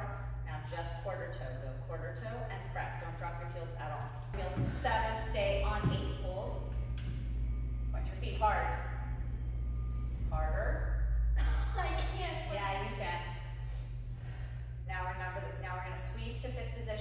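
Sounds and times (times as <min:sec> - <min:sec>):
woman talking: 0:00.0 - 0:06.7, 0:07.9 - 0:09.0, 0:10.3 - 0:13.3, 0:14.9 - 0:17.0
steady low hum: 0:00.0 - 0:17.0.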